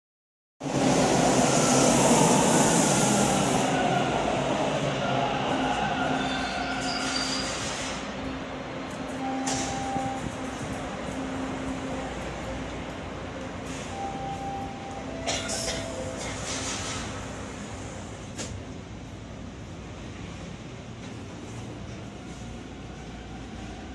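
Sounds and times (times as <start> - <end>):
subway train rumbling and hissing: 0.6 - 23.9.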